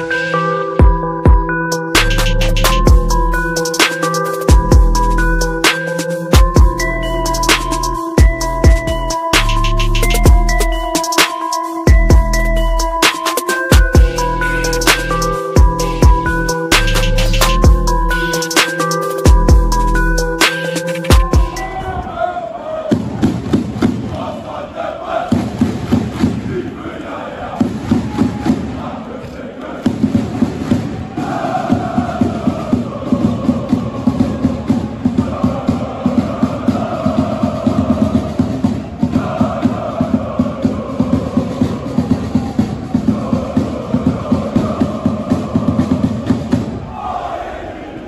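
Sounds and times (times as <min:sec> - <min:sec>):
quick regular beat: 0:00.8 - 0:21.8
crowd chanting in unison: 0:21.5 - 0:48.0.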